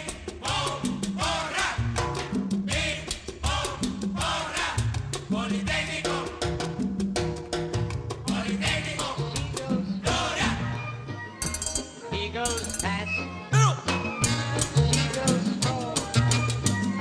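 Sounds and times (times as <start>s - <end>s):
latin mambo dance music: 0.0s - 17.0s.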